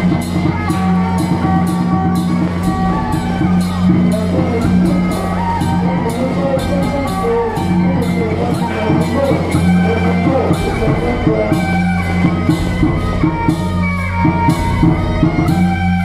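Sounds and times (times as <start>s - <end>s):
drum gong and cymbal strikes: 0.0s - 16.0s
steady drone: 0.0s - 16.0s
suona horns wailing melody: 0.0s - 16.0s.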